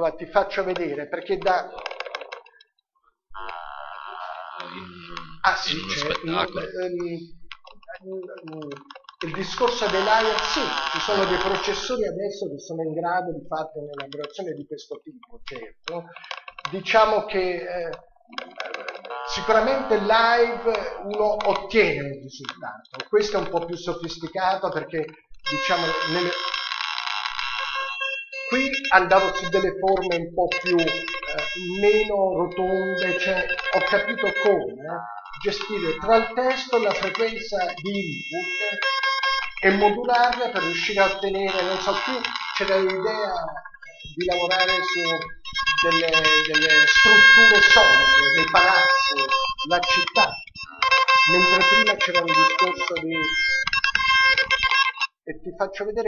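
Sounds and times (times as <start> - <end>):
buzzing electronic tone: 9.5 - 11.9, 25.5 - 29.8, 30.5 - 34.6, 35.3 - 55.2.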